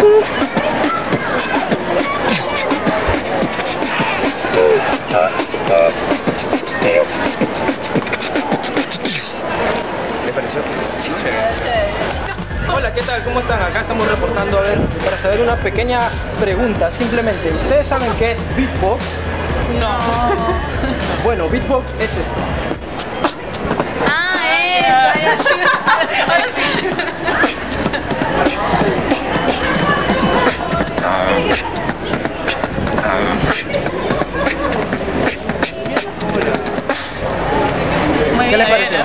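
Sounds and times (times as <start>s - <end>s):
man beatboxing: 0.0s - 9.4s, 10.6s - 23.7s, 25.3s - 37.4s.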